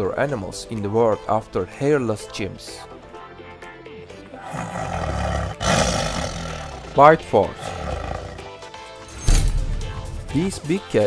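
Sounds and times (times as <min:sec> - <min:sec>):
background music: 0:00.0 - 0:11.0
big cat roaring: 0:04.4 - 0:08.5.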